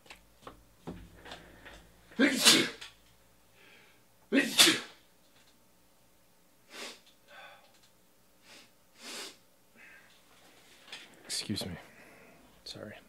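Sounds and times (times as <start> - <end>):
man sneezing: 2.2 - 2.9, 4.3 - 5.0.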